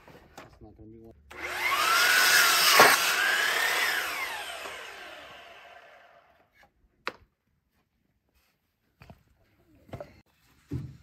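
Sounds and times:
miter saw motor whine: 1.3s - 6.3s.

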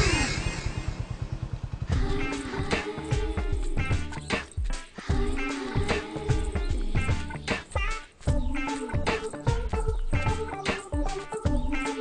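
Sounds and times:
motorcycle engine puttering: 0.0s - 2.0s.

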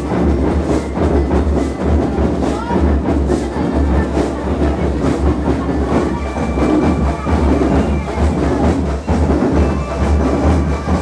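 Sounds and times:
marching drums: 0.0s - 11.0s.

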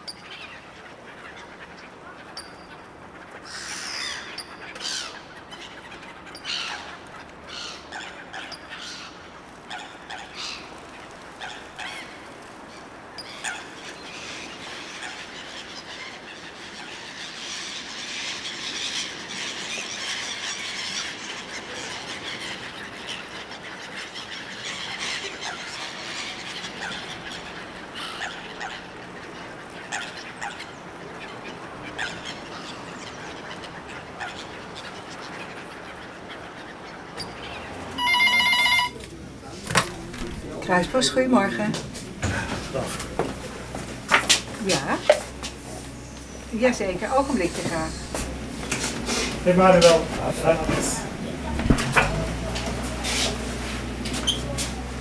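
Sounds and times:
gulls calling: 0.0s - 55.0s
telephone ringing: 38.0s - 39.0s.

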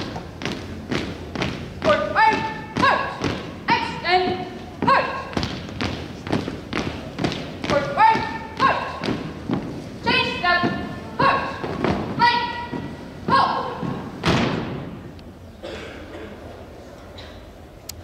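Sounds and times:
shoes marching on hardwood floor: 0.0s - 14.8s
loud foot stamp: 0.0s - 15.0s
person shouting commands: 1.8s - 5.4s, 7.7s - 9.2s, 10.0s - 13.8s.

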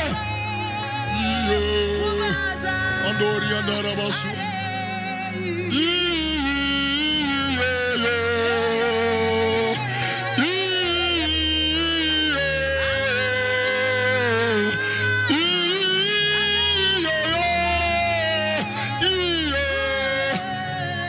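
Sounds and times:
man singing gospel: 0.0s - 21.0s
sustained low backing chords: 0.0s - 21.0s
woman singing gospel: 0.0s - 21.0s.

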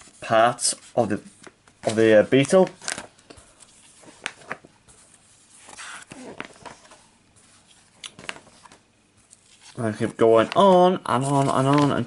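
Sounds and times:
paper pages rustling: 0.0s - 12.0s.

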